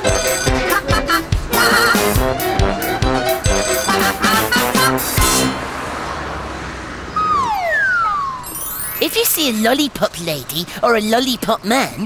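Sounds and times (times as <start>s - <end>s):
road traffic noise: 0.0s - 12.0s
cartoon falling whistle: 7.2s - 8.8s
high twinkling chime run: 7.7s - 9.2s.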